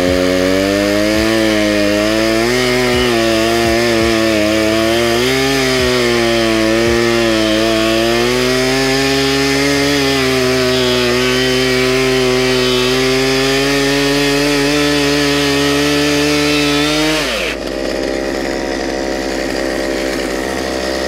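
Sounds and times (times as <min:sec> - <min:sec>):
chainsaw cutting wood at full throttle: 0:00.0 - 0:21.0.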